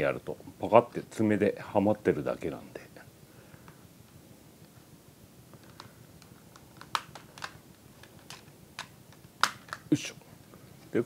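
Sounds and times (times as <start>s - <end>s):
plastic remote case clicks: 6.5s - 9.8s.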